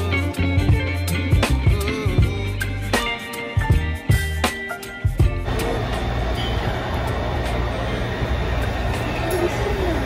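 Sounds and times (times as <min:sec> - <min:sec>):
faint voices: 0:05.5 - 0:10.0
low machinery hum: 0:05.5 - 0:10.0.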